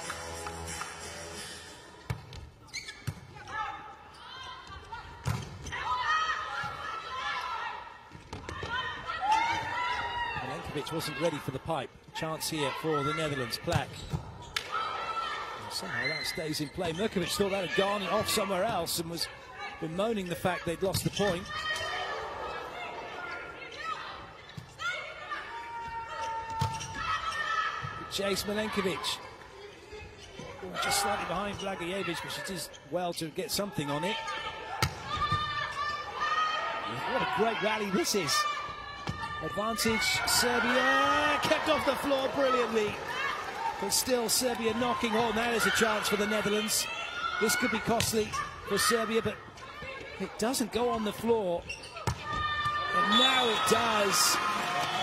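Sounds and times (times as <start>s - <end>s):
crowd voices: 33.6s - 51.6s
people shouting: 34.7s - 43.8s.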